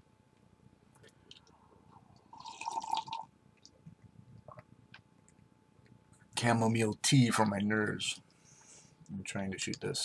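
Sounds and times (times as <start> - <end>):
person slurping tea: 2.3 - 3.2.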